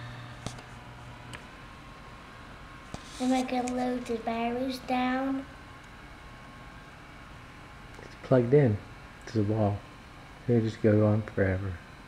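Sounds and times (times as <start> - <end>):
massager motor humming: 0.0 - 12.0.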